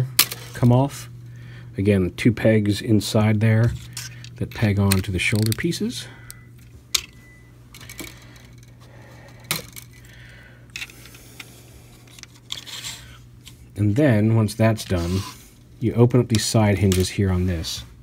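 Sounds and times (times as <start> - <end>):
plastic pieces clicking and knocking: 3.7 - 5.7.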